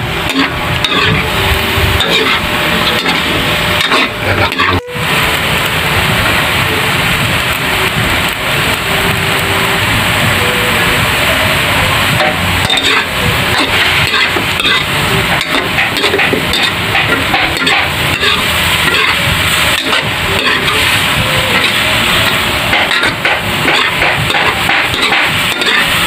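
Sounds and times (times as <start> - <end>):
food sizzling in a wok: 0.0 - 26.0
metal spatula scraping a pan: 0.3 - 1.3, 2.0 - 4.9, 12.2 - 21.0, 21.6 - 26.0.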